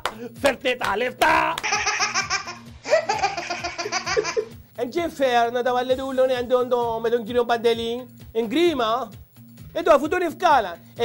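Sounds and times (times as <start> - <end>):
baby belly-laughing: 1.6 - 4.5.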